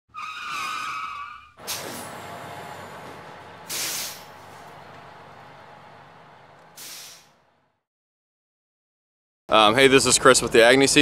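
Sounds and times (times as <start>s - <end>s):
high squeal: 0.1s - 3.1s
hissing rush: 3.5s - 5.8s.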